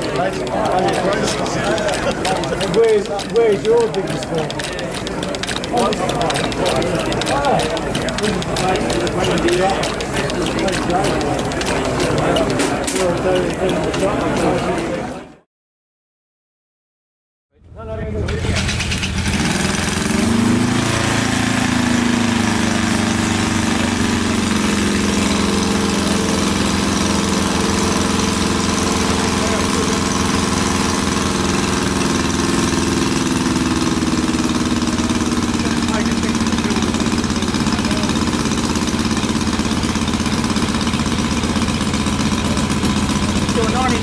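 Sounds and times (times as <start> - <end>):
model engine running: 0.0 - 15.2, 18.2 - 44.0.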